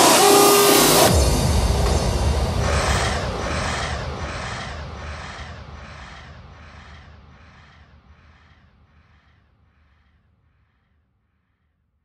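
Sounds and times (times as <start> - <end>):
crow caw sound: 2.7 - 11.6.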